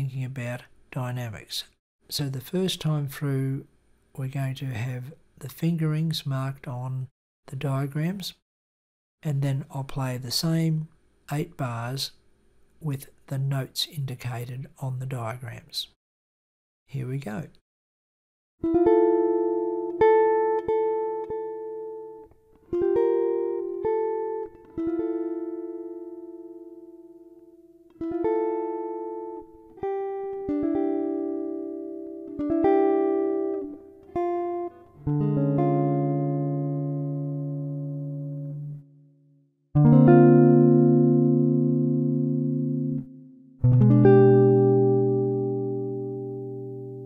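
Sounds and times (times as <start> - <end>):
solo jazz guitar chords: 18.6 - 39.0, 39.8 - 47.0.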